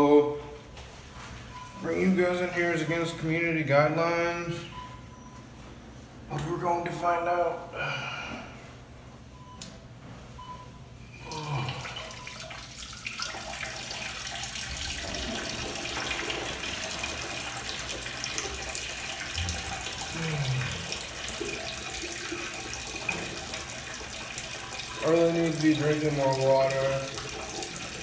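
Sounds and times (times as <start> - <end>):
tap water running into sink: 12.0 - 28.0.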